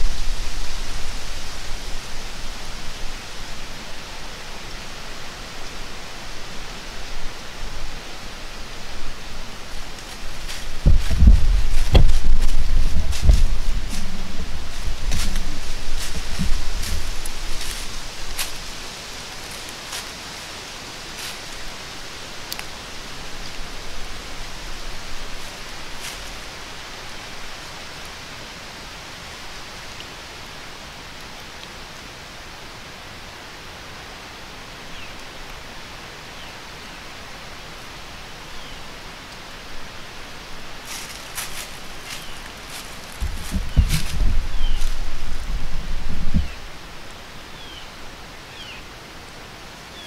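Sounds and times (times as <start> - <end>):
steady outdoor hiss: 0.0 - 50.0
deer stepping through dry leaves: 8.8 - 21.8, 23.8 - 26.7, 40.7 - 46.8.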